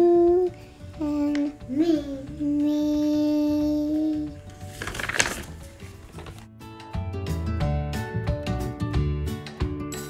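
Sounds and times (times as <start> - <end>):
person singing with music: 0.0 - 4.6
short rustling noise: 4.5 - 6.5.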